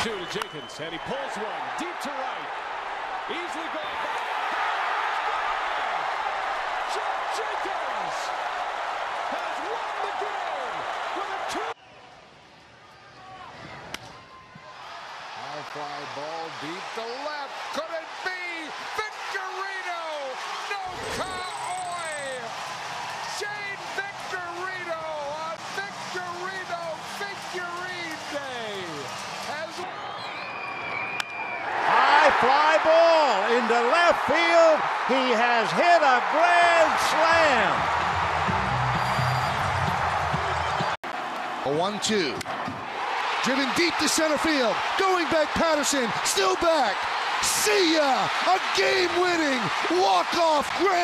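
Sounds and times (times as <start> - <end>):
crowd cheering and whooping: 0.0 - 11.8, 14.2 - 25.3, 26.1 - 41.4, 42.6 - 51.0.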